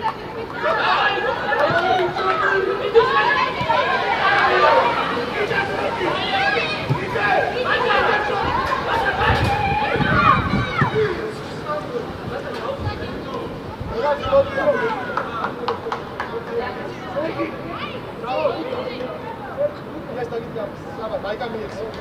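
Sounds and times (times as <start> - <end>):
people shouting over one another: 0.3 - 11.3.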